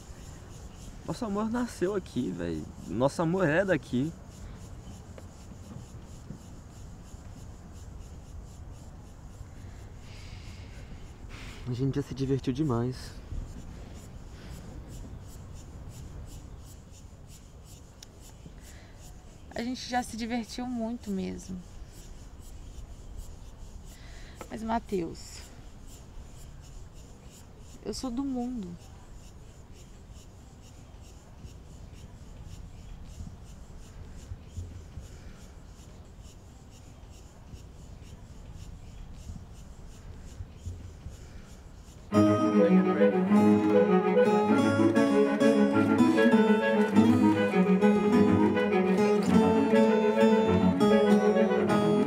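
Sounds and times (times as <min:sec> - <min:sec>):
faint high-pitched ticks: 0:00.0 - 0:42.1.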